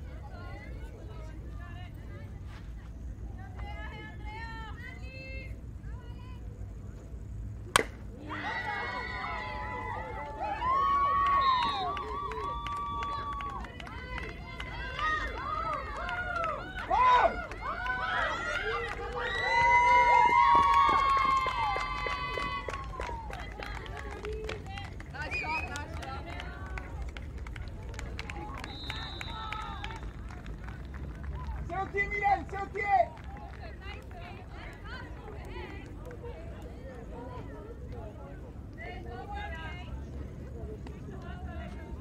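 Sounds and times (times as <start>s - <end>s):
players shouting and cheering: 7.8s - 23.3s.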